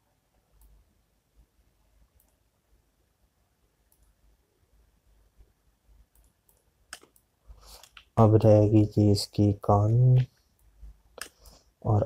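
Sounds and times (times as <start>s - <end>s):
faint computer mouse clicks: 2.2s - 2.4s, 3.9s - 4.2s, 6.1s - 8.1s, 10.2s - 11.6s.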